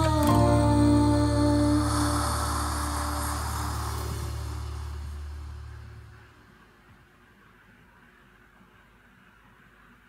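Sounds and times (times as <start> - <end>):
deep bass note: 0.0 - 6.4.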